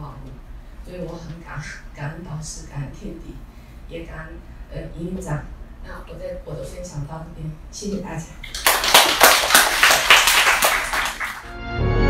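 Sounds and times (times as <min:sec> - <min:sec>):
audience applauding: 0:08.5 - 0:11.5.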